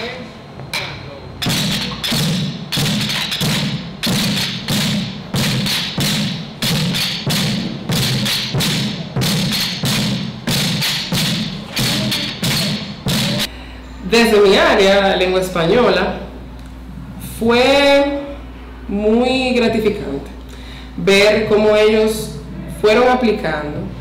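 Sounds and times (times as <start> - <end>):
drumming on plastic buckets: 1.4 - 13.5.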